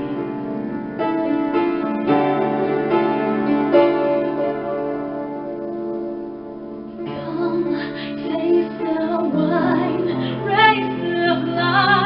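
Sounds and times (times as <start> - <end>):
piano note struck: 0.0 - 7.5
piano chord ringing: 0.0 - 12.0.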